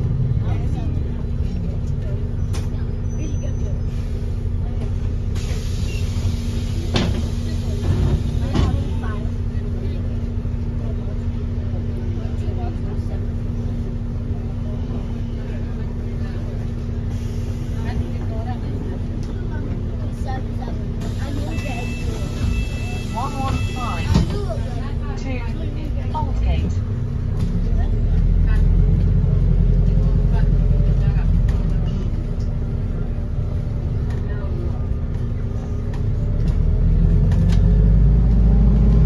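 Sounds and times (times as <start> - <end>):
bus engine drone: 0.0 - 39.0
passengers chattering: 0.0 - 39.0
road rumble: 0.0 - 39.0.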